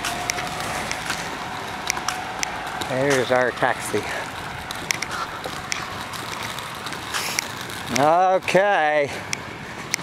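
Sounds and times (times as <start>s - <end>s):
road and engine noise: 0.0s - 10.0s.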